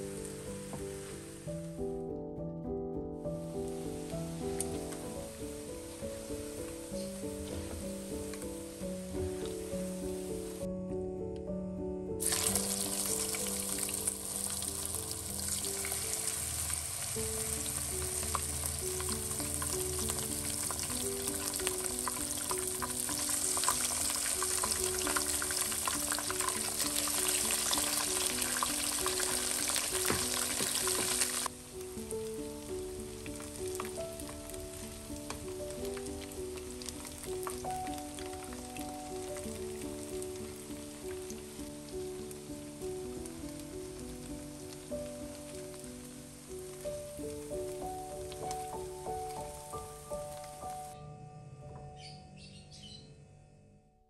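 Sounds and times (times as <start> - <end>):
pieces deep-frying in hot oil: 12.2 - 50.6.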